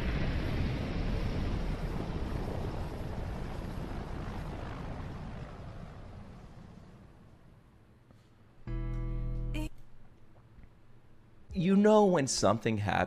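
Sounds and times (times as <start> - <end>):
rushing wind: 0.0 - 7.8
propeller aircraft engines droning: 0.0 - 8.1
music: 8.7 - 10.0.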